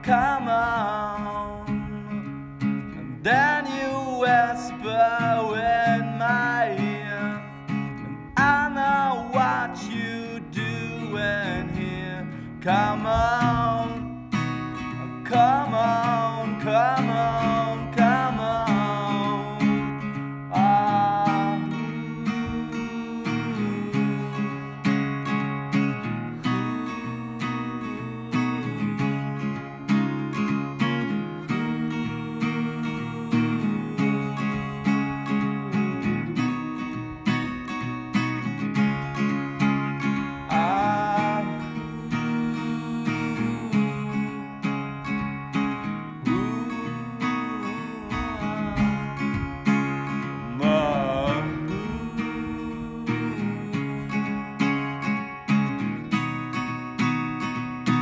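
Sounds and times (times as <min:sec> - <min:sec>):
person singing wordless melody: 0:00.0 - 0:36.8, 0:40.0 - 0:55.1
acoustic guitar strumming: 0:00.0 - 0:58.0.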